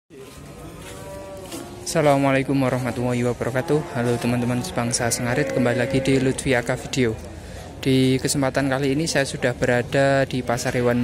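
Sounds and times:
cow mooing: 3.4s - 6.9s.

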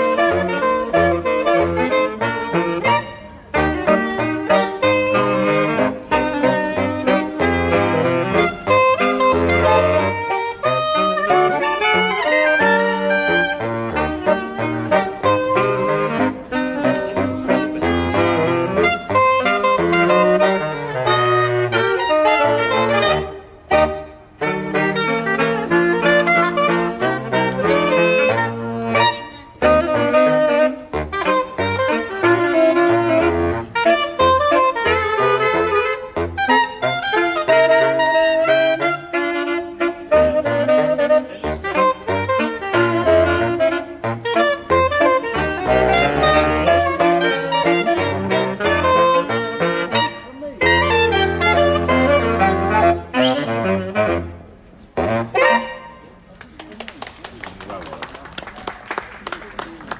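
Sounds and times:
saxophone quartet playing jazz: 0.0s - 59.9s.

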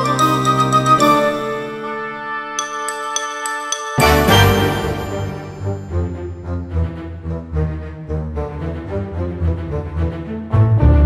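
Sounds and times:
held music chord: 0.0s - 7.6s
bright bell-like chimes: 2.6s - 6.7s.

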